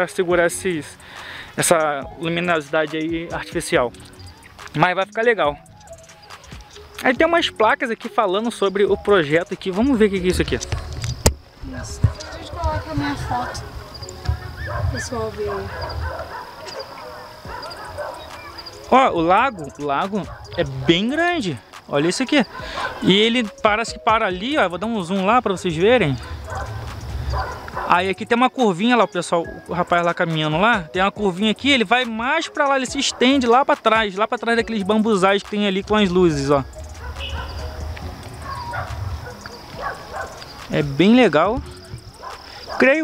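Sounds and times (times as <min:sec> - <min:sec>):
high insect trill: 0:00.0 - 0:43.0
indistinct voices: 0:00.0 - 0:43.0
distant dog barking: 0:10.3 - 0:11.0, 0:11.7 - 0:23.3, 0:25.9 - 0:28.2, 0:32.7 - 0:33.8, 0:35.8 - 0:43.0.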